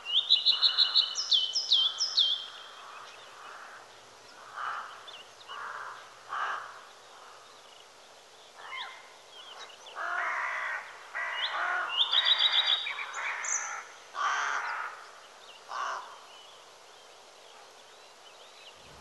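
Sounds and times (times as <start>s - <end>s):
small birds chirping: 0.0s - 19.0s
crows cawing: 0.5s - 1.2s, 2.4s - 7.4s, 10.0s - 15.0s, 15.7s - 16.2s.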